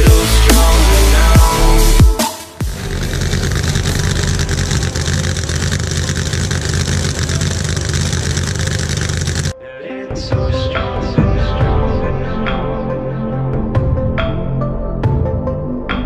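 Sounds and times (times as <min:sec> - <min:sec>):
drag car engine running loud: 0:02.6 - 0:09.5.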